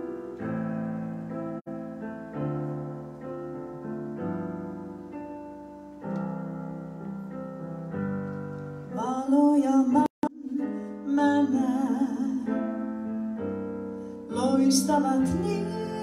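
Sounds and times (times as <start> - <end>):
electric keyboard chords: 0.0 - 9.0
woman singing a hymn: 8.9 - 12.8, 14.3 - 16.0.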